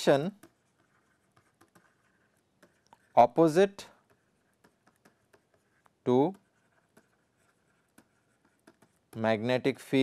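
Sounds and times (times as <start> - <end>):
person speaking: 0.0 - 0.5, 2.6 - 4.1, 6.0 - 6.8, 8.0 - 10.0
stylus tapping and scratching: 0.0 - 10.0.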